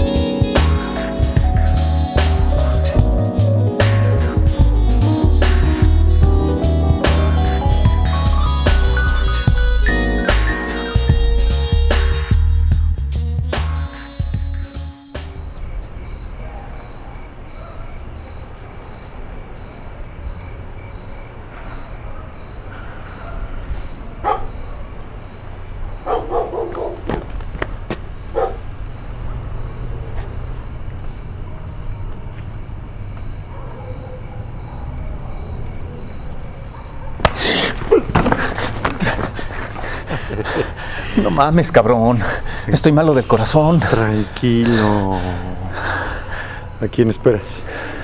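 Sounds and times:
music: 0.0 - 15.8
crickets chirping: 0.0 - 48.0.

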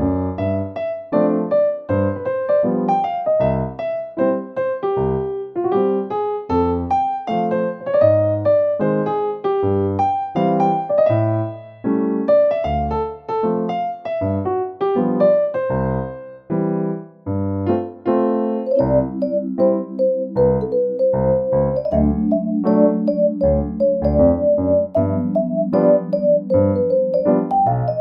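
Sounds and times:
piano music: 0.0 - 28.0.

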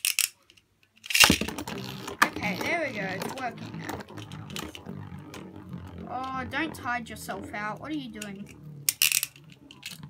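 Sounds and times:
spinning top whirring: 1.1 - 10.0.

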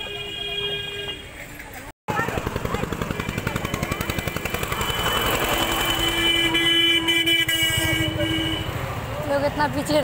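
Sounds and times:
vehicle horn steady tone: 0.0 - 1.4, 3.2 - 8.8
street traffic rumble: 0.0 - 10.0.

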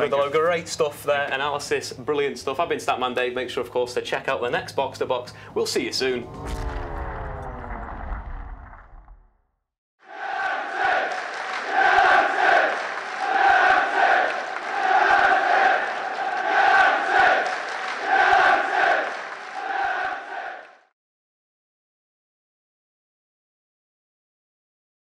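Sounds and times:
stadium crowd chanting: 10.0 - 20.9.

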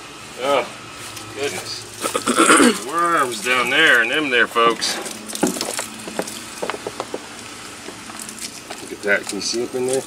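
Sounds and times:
compost crumbling and falling: 4.7 - 10.0.

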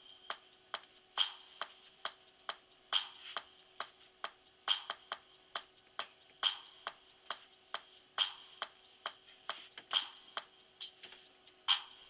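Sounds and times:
metronome ticking: 0.0 - 12.0.

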